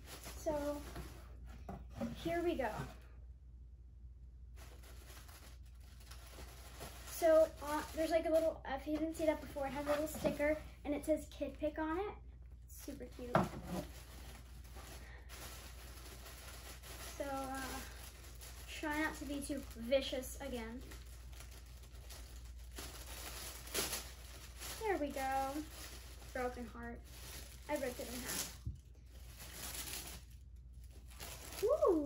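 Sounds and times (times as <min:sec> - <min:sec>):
tissue paper rustling: 0:00.0 - 0:03.0, 0:04.5 - 0:10.6, 0:12.8 - 0:32.0
girl speaking: 0:00.4 - 0:01.0, 0:02.0 - 0:03.0, 0:07.1 - 0:13.5, 0:17.1 - 0:18.0, 0:18.7 - 0:20.9, 0:24.8 - 0:25.7, 0:26.3 - 0:27.1, 0:27.7 - 0:28.5
girl humming: 0:31.6 - 0:32.0.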